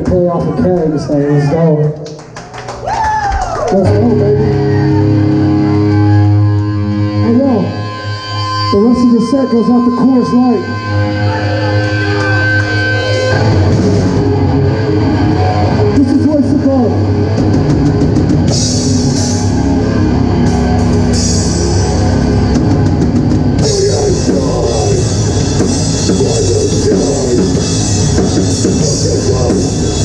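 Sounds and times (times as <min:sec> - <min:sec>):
bass guitar: 0:00.0 - 0:30.0
distorted electric guitar: 0:03.7 - 0:30.0
drum kit with cymbals: 0:20.5 - 0:30.0.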